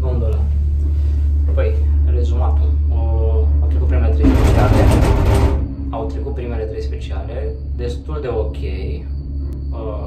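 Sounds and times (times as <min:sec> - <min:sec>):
gondola cabin rumbling on cable: 0:00.0 - 0:09.5
rushing rattle over rollers: 0:04.2 - 0:05.8.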